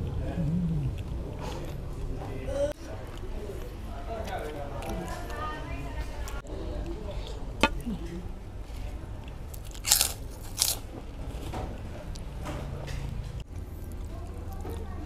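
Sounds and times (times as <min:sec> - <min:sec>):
person chewing: 0:09.2 - 0:10.8.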